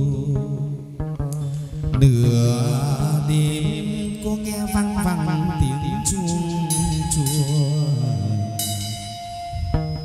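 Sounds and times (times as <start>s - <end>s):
instrumental accompaniment: 0.0s - 10.0s
person singing long bending notes: 0.0s - 10.0s.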